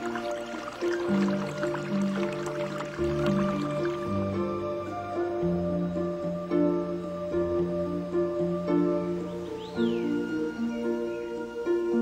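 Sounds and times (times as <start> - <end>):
water dripping: 0.0 - 4.5
soft music of held notes: 0.0 - 12.0.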